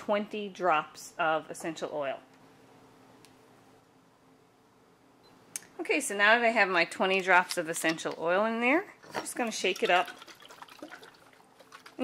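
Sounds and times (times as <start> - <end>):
liquid sloshing in glass bottle: 9.0 - 12.0.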